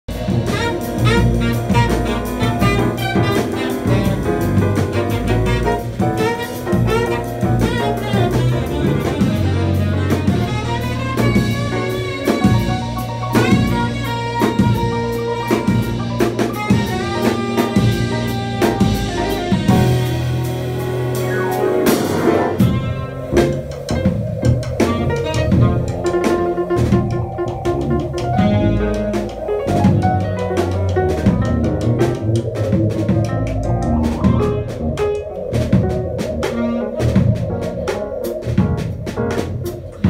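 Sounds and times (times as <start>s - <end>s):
piano: 0.0s - 40.0s
busy drum kit with cymbals: 0.1s - 40.0s.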